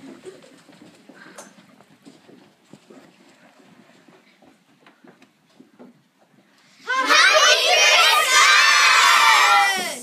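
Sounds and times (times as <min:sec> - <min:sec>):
children shouting and cheering: 0:06.8 - 0:10.0.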